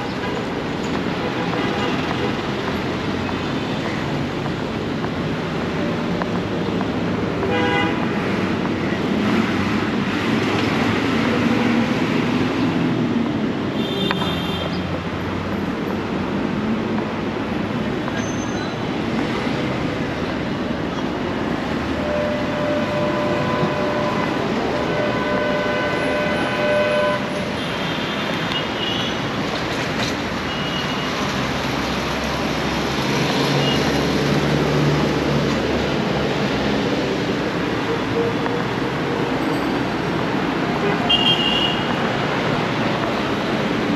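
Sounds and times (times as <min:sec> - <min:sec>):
buses passing: 0:00.0 - 0:43.9
road traffic: 0:00.0 - 0:43.9
vehicle horns honking: 0:07.4 - 0:08.3, 0:21.9 - 0:29.2, 0:40.7 - 0:42.1.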